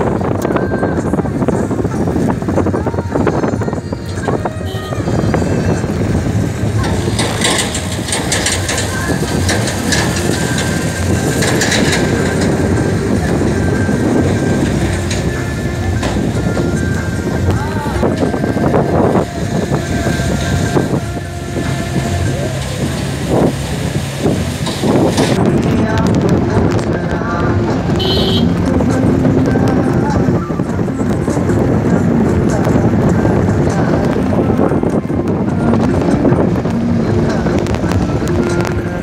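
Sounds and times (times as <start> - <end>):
engine and tyres rumbling: 0.0 - 39.0
voices: 0.0 - 39.0.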